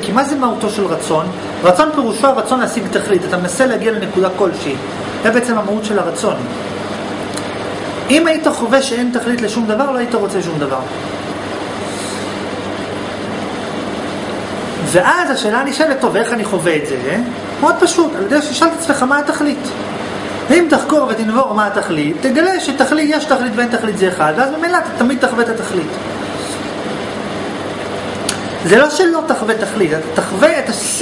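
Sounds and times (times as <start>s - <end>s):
steady hiss: 0.0s - 31.0s.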